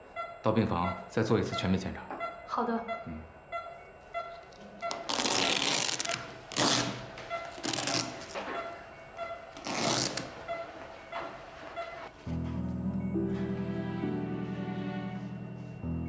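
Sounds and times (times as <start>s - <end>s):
patient monitor beeping: 0.0s - 16.0s
rustling and handling noise: 4.5s - 12.1s.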